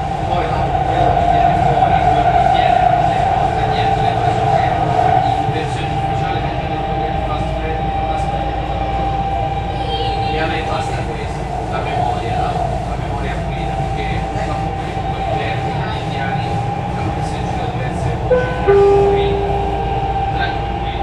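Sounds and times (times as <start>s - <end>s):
two-note electronic chime: 18.3s - 20.6s.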